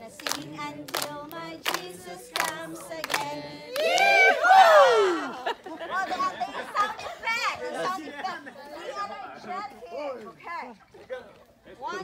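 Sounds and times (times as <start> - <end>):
young people chattering: 5.2 - 12.0.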